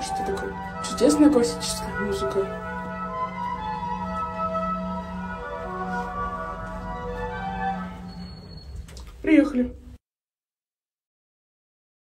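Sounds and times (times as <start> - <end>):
classical music over speaker: 0.0 - 9.9.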